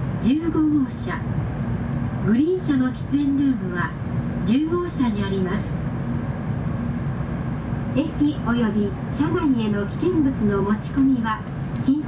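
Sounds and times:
faint steady hum: 0.0 - 12.0
train interior low rumble: 0.0 - 12.0.

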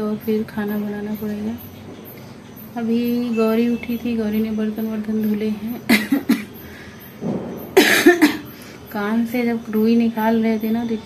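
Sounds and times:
woman coughing: 5.9 - 6.6, 7.8 - 8.6
intake of breath: 6.6 - 7.2.

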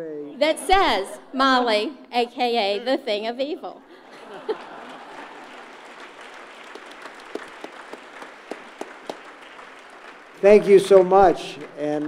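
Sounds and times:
audience applauding: 4.1 - 12.0.

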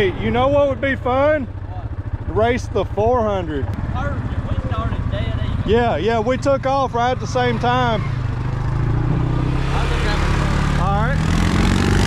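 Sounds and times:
atv engines running: 0.0 - 12.0.

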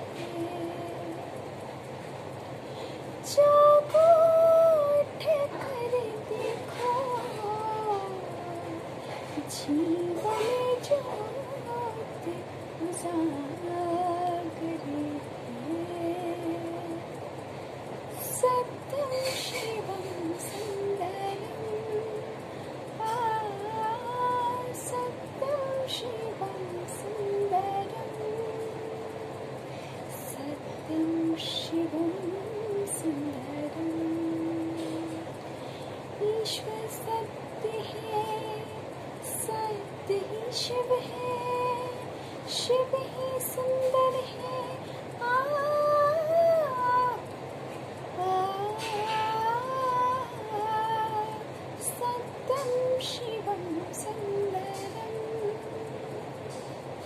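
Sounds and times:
room background noise: 0.0 - 57.0
woman singing a long high note: 3.3 - 8.8, 9.4 - 17.0.

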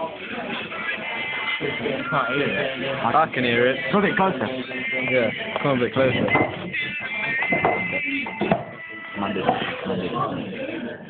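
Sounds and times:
song through headphones: 0.0 - 11.0.

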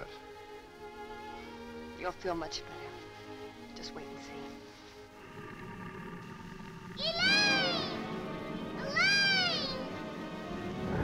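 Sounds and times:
background music: 0.0 - 11.0
girl's high-pitched call: 7.0 - 8.1, 8.8 - 10.0.

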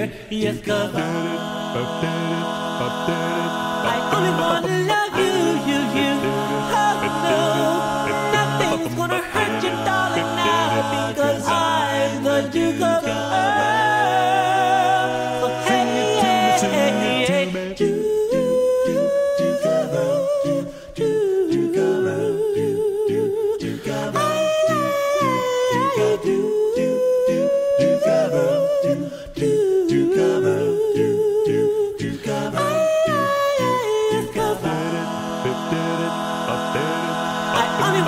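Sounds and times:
backing voices repeating syllables: 0.0 - 20.7, 25.8 - 38.0
lead voice singing with vibrato: 0.0 - 38.0.

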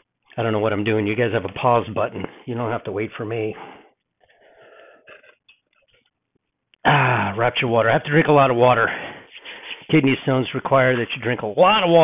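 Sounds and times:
breathy sip: 3.6 - 5.5, 8.9 - 9.9
man swallowing: 5.0 - 5.6, 6.8 - 7.3.

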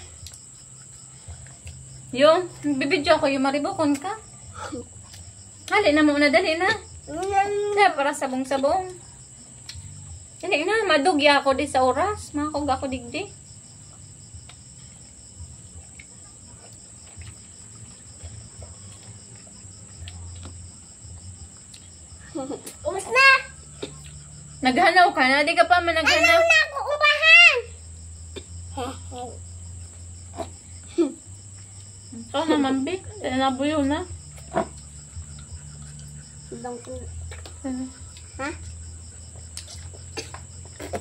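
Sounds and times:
crickets chirping: 0.0 - 41.0
high-pitched insect drone: 0.0 - 41.0
chewing and food handling clicks: 0.2 - 2.0, 14.4 - 14.9, 15.7 - 22.0, 34.4 - 36.2, 36.8 - 38.8, 39.4 - 41.0.

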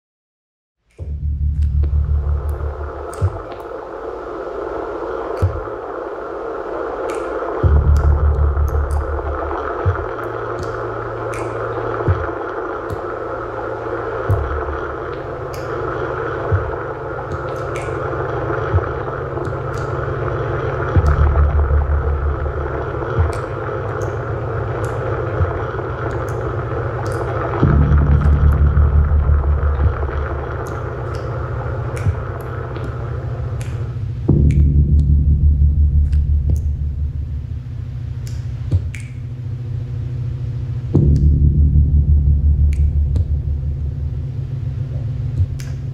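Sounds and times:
sharp synth clicks: 0.9 - 4.0, 5.3 - 5.9, 7.1 - 40.3, 40.9 - 45.9
noisy synthesizer drone: 0.9 - 45.9
deep pulsing bass: 1.0 - 4.1, 7.1 - 45.9.

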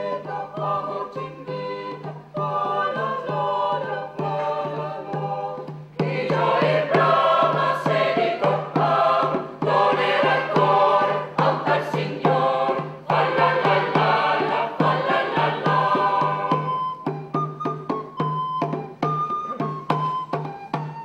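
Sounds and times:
choir singing: 0.0 - 16.9.

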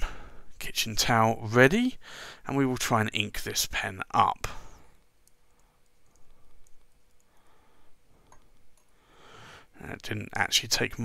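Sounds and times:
soft breath: 2.0 - 2.5, 7.2 - 9.8.

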